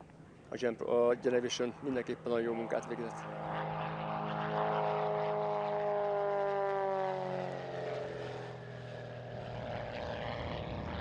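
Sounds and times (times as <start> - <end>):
propeller plane engine droning: 0.0 - 11.0.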